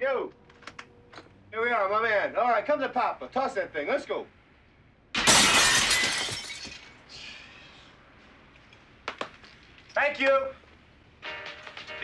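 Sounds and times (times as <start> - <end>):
glass window shattering: 5.2 - 7.0.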